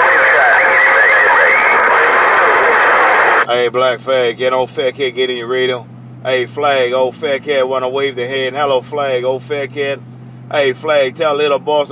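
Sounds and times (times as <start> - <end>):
faint distant radio voices: 0.0 - 3.4
radio static hiss: 0.0 - 3.5.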